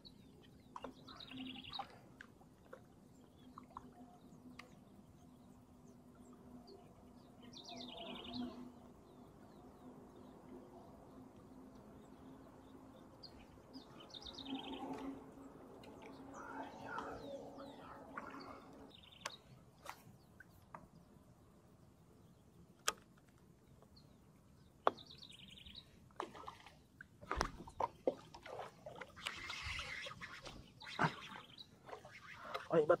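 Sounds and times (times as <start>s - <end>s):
birds chirping: 0.0s - 21.2s, 23.6s - 26.7s, 27.3s - 33.0s.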